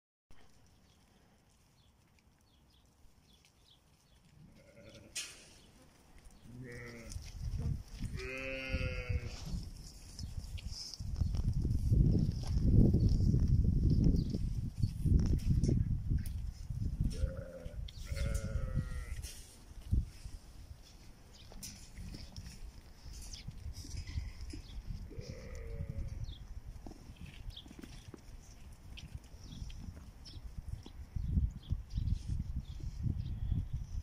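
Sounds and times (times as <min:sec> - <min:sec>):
sheep bleating: 0:04.6 - 0:05.2, 0:06.5 - 0:07.2, 0:08.1 - 0:09.4, 0:17.2 - 0:19.2, 0:25.1 - 0:26.1.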